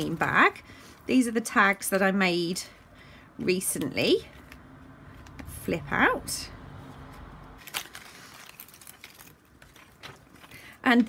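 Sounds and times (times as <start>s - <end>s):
paper rustling: 7.1s - 11.0s.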